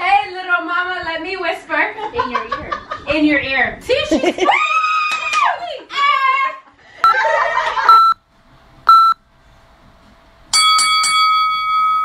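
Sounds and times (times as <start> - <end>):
short electronic beeps: 7.9 - 8.2, 8.9 - 9.2
bright sustained chime tone: 10.6 - 12.0.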